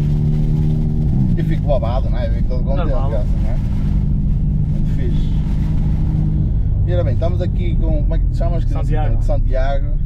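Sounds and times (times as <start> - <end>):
car engine droning: 0.0 - 10.0
low road rumble: 0.0 - 10.0.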